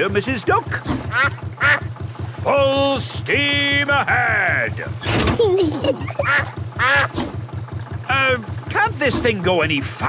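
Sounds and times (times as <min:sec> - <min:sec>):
boat engine chugging: 0:00.0 - 0:10.0
cartoon duck quacking: 0:01.1 - 0:01.9, 0:05.9 - 0:07.2.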